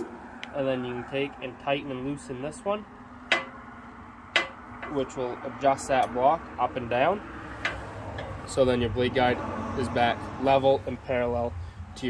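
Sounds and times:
sharp metallic clicks: 3.2 - 5.2, 5.8 - 6.3, 7.4 - 8.7.

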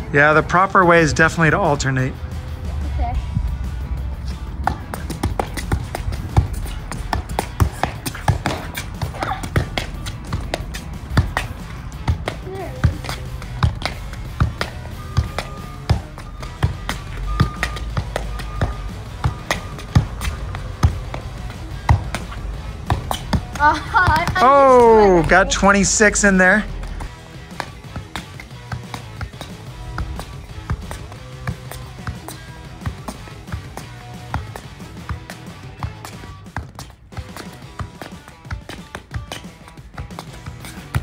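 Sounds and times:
background music: 0.0 - 41.0
shoe thumping football: 4.4 - 41.0.

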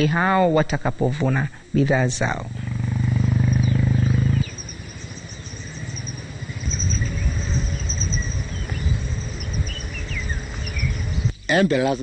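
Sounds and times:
high-pitched wildlife chirping: 2.0 - 12.0
low rumble: 2.5 - 11.3.

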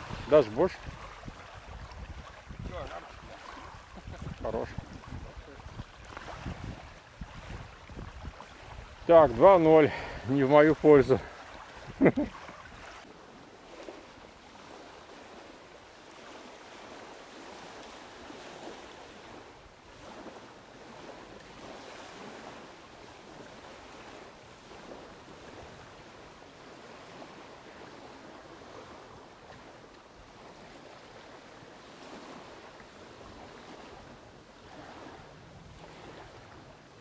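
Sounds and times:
small waves lapping at shore: 0.0 - 37.0
wind: 0.0 - 37.0.

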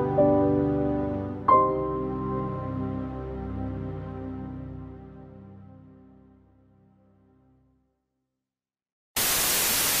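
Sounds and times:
tv static hiss: 9.2 - 10.0.

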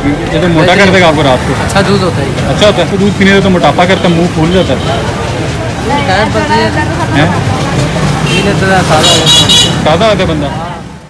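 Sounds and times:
men talking: 0.0 - 11.0.

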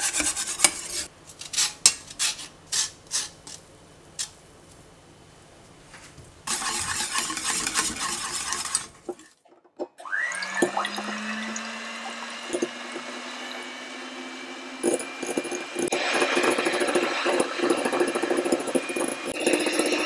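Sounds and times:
whisk scraping in saucepan: 0.0 - 4.4, 6.5 - 9.4, 10.6 - 20.0
electric hand mixer whine: 10.0 - 20.0.

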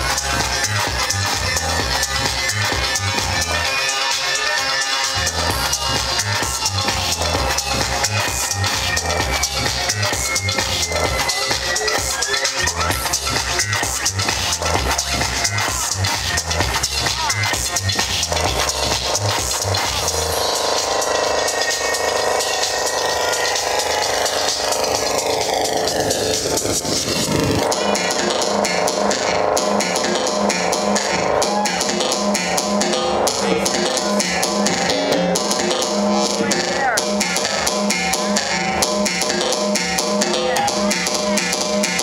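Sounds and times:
electronic dance music: 0.0 - 42.0
downward synth sweep: 20.0 - 36.6.

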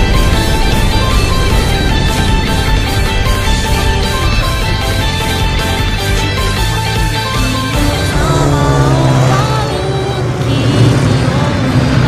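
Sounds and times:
propeller plane engines droning: 0.0 - 12.0
rock music with electric guitar: 0.0 - 12.0.

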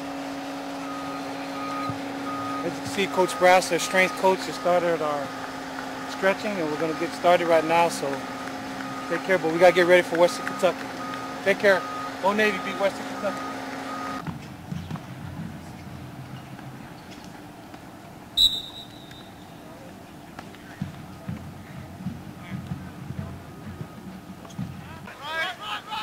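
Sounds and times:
faint indistinct voices: 19.4 - 26.0.

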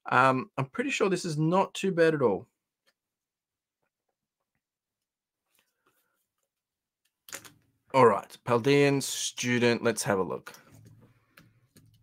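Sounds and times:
man speaking: 0.0 - 2.5, 7.9 - 10.6.

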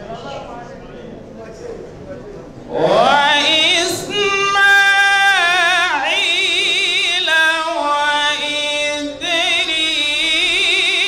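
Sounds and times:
man chanting into a microphone: 2.7 - 11.0.

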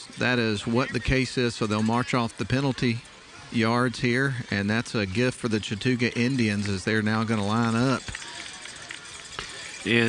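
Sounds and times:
stadium crowd ambience: 0.0 - 10.0
man commentating: 0.2 - 8.0.

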